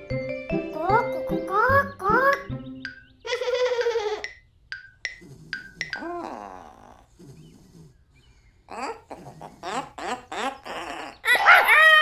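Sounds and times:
xylophone-like struck notes: 0.0s - 3.1s, 4.2s - 6.2s
wavering cartoon voice: 0.7s - 2.5s, 5.8s - 7.1s, 8.7s - 12.0s.

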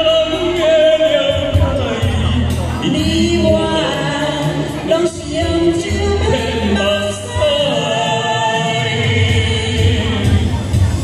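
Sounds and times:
man and woman singing duet: 0.0s - 10.8s
karaoke backing track: 0.0s - 11.0s.

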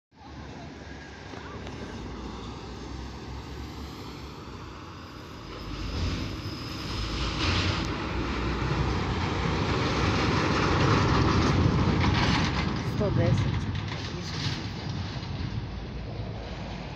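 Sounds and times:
diesel truck driving past: 0.2s - 16.9s.

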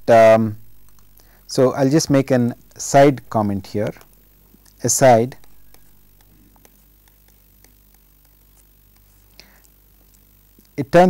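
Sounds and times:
low steady hum: 0.0s - 11.0s
breathy hiss: 1.2s - 1.6s, 6.3s - 10.8s
stylus ticking on tablet screen: 5.4s - 10.8s.

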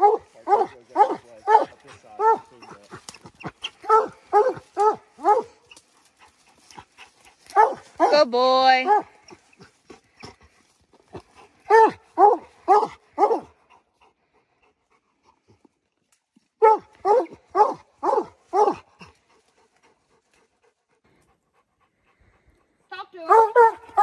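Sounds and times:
dog barking and baying: 0.0s - 5.6s, 7.5s - 9.4s, 11.7s - 13.6s, 16.6s - 18.9s, 23.2s - 24.0s.

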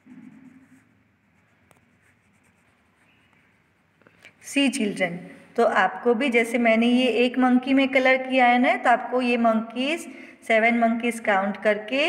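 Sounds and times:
pencil scratching on paper: 0.0s - 3.5s.

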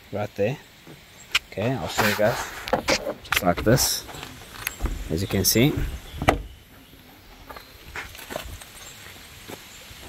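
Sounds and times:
faint footsteps and ticks: 0.8s - 9.7s.

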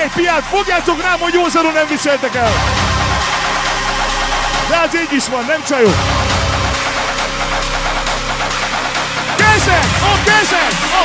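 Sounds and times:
electronic dance music: 0.0s - 11.0s
fast ticking rhythm: 0.0s - 11.0s.

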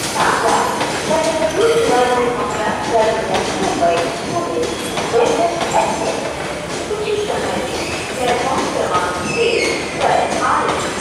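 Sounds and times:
train coaches rolling on rails: 0.0s - 11.0s.

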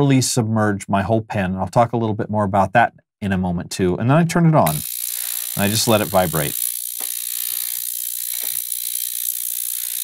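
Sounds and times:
ultrasonic cleaner high-pitched buzz: 4.7s - 10.0s.

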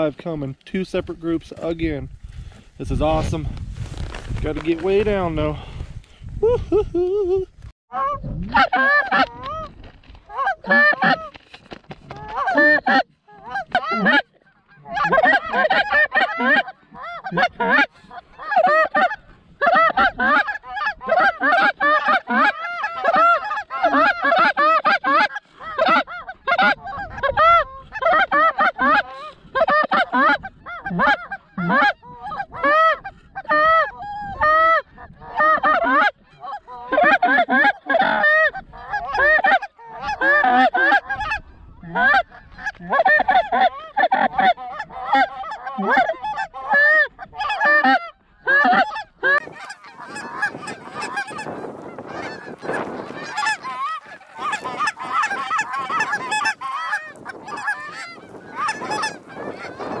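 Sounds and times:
geese honking: 7.9s - 9.7s, 10.3s - 11.4s, 12.1s - 60.0s.

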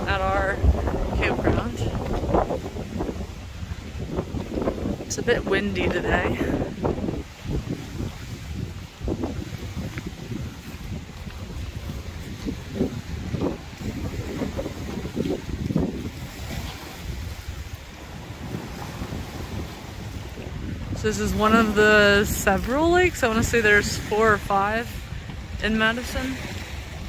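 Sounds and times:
water splashing against shore: 0.0s - 27.0s
wind buffeting the microphone: 0.0s - 27.0s.

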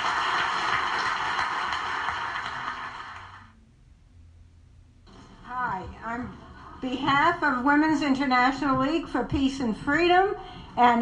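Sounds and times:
audience applauding: 0.0s - 3.5s.

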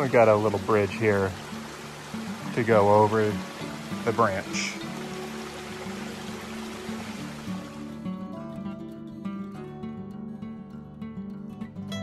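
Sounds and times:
stream running water: 0.0s - 9.6s
acoustic guitar music: 0.0s - 12.0s.

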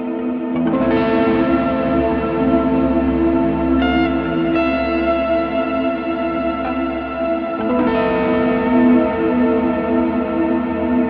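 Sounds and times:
electric guitar with distortion: 0.0s - 11.0s.

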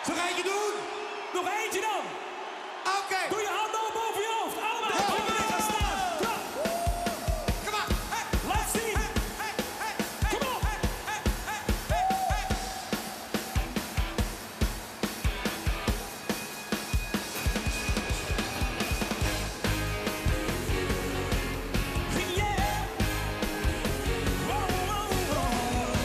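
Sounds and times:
drums and hand claps: 4.9s - 26.0s
bass and full band: 5.6s - 26.0s.

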